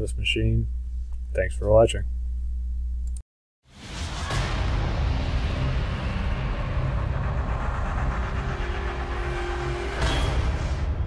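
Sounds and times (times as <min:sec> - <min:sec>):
low steady rumble: 0:00.0 - 0:03.2
whoosh: 0:03.7 - 0:11.0.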